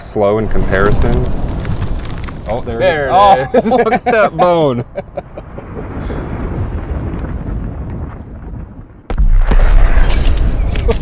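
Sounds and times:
grenade explosion rumble: 0.0 - 11.0
loud blast with sharp crack: 0.2 - 4.6, 5.5 - 11.0.

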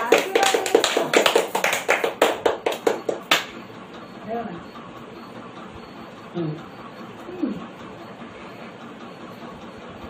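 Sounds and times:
hands clapping quickly: 0.0 - 3.6.

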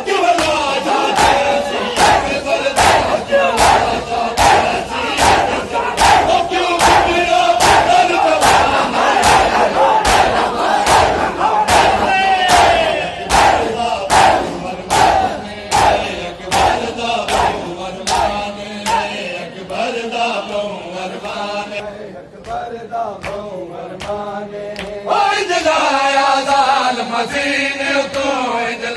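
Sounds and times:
men chanting: 0.0 - 28.9
men slapping chests in unison: 0.2 - 19.8, 22.3 - 25.0, 27.3 - 28.4.

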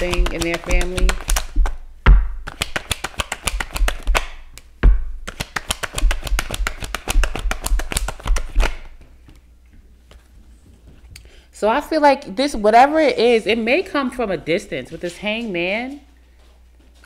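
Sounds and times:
cards being shuffled: 0.0 - 1.8, 2.4 - 4.6, 5.2 - 9.4
cards knocking on table: 0.0 - 9.0.

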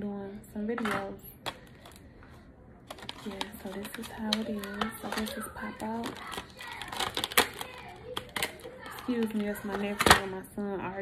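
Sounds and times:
plastic package clicking open: 2.9 - 10.2.

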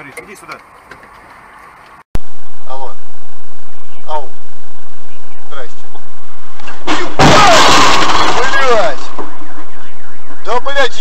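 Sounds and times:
car crash: 6.7 - 9.5
glass breaking: 6.8 - 9.2.

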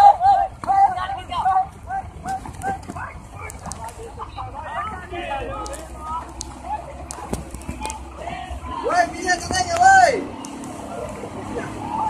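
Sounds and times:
distant voices calling out: 0.0 - 12.0
steady low rumble: 0.0 - 12.0.

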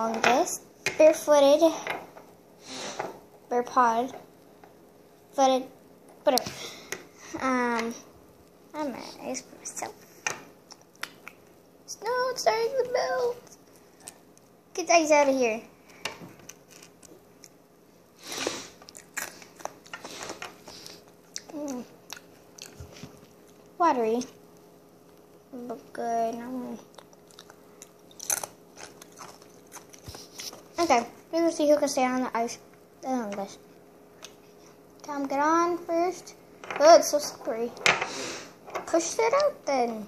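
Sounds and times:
crisp clicks and crunches: 26.9 - 30.7.

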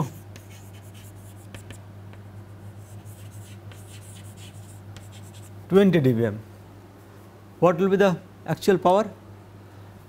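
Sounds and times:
chalk scratching on chalkboard: 0.0 - 1.8, 2.4 - 5.6
steady low hum: 0.0 - 10.0.

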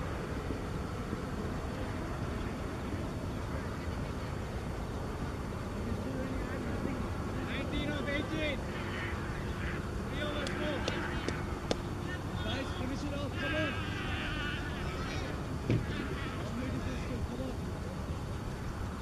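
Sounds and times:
low outdoor rumble: 0.0 - 19.0
raised voices calling out: 7.4 - 17.1.

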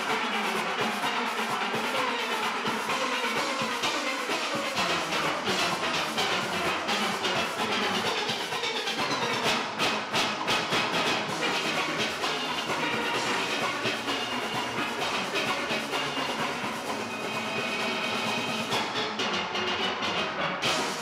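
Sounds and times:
sharp percussion strokes: 0.0 - 21.0
steel pans playing: 3.6 - 21.0.

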